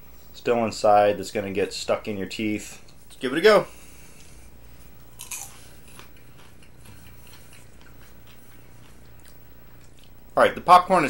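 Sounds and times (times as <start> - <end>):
person crunching popcorn: 5.0 - 10.3.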